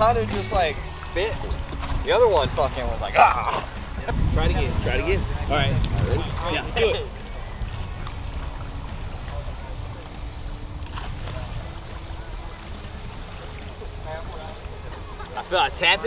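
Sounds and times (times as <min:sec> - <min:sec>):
lapping lake water: 0:00.0 - 0:16.0
wind rumbling on microphone: 0:00.0 - 0:16.0.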